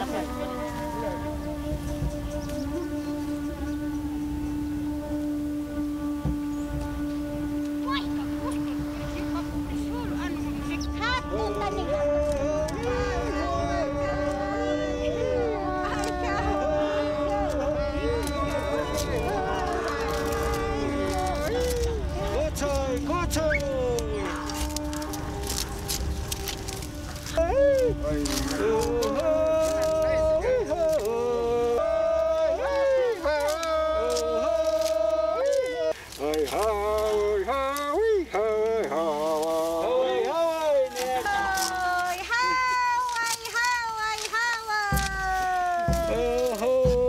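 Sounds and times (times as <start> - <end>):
sickles snapping stalks: 0.0 - 13.0, 15.7 - 47.0
steady held note: 0.0 - 35.7
voices calling in sliding cries: 0.0 - 47.0.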